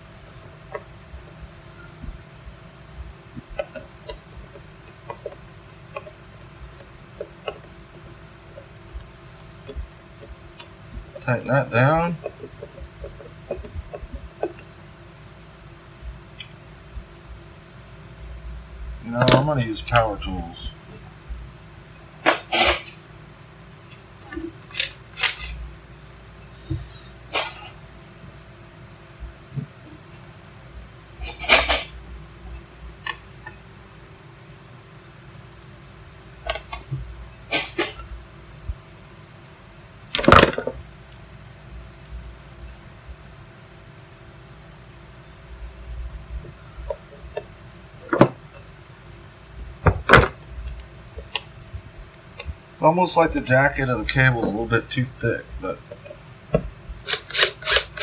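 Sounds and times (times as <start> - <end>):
faint steady hum: 0.0 - 58.0.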